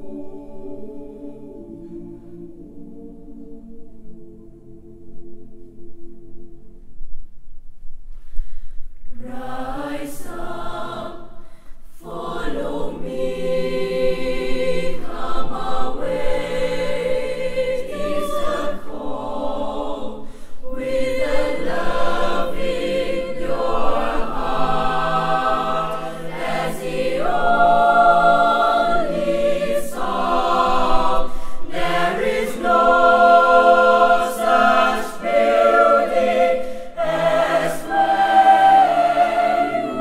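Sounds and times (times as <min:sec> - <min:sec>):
youth choir singing in harmony: 0:00.0 - 0:05.8, 0:09.1 - 0:40.0.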